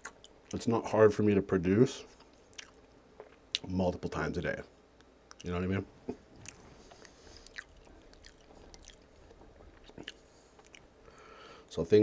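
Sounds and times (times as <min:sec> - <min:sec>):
close chewing of food: 0:00.0 - 0:00.6, 0:02.5 - 0:03.7, 0:05.3 - 0:11.4
wet mouth clicks: 0:06.1 - 0:09.0, 0:09.8 - 0:10.9.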